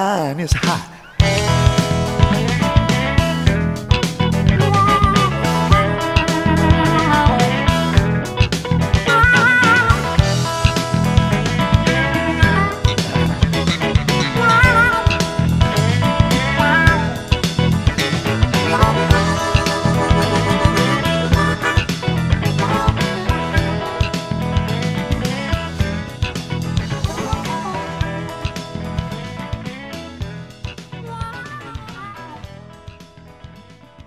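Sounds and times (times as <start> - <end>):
bass and drum groove: 0.5 - 34.0
electric guitar bending notes: 1.0 - 33.4.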